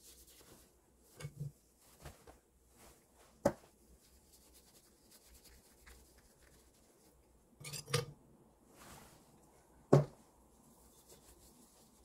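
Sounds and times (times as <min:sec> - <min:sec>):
sharp ceramic clink: 0:07.6 - 0:08.1.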